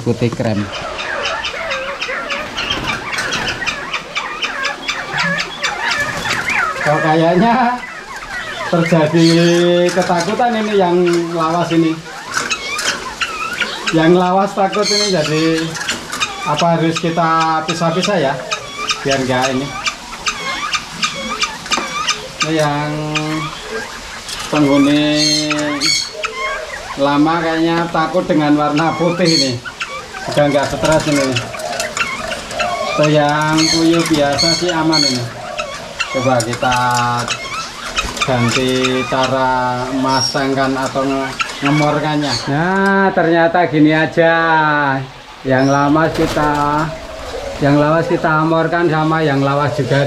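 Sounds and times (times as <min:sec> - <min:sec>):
birds chirping and calling: 0:00.0 - 0:50.0.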